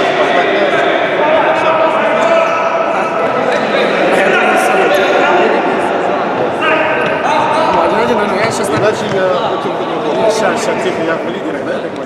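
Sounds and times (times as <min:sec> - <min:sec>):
players shouting: 0:00.0 - 0:10.7
ball bouncing on hard floor: 0:08.4 - 0:09.4.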